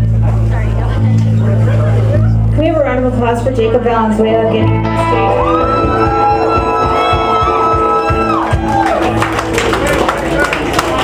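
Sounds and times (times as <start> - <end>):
drums: 0.0 - 11.0
guitar: 0.0 - 11.0.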